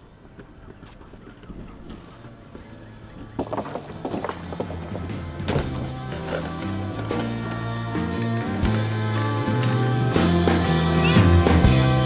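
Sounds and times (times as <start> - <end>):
skateboard wheels rolling on concrete: 0.0 - 12.0
skateboard clatter: 0.2 - 8.9
music with bass and drums: 2.6 - 12.0.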